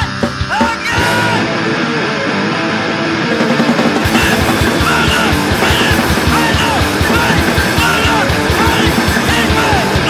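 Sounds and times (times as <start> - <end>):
distorted punk guitar riff: 0.0 - 10.0
drums: 0.0 - 10.0.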